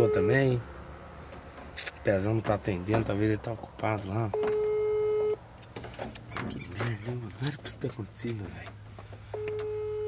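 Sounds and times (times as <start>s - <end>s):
telephone ringback beep: 0.0s - 0.4s, 4.4s - 5.4s, 9.4s - 10.0s.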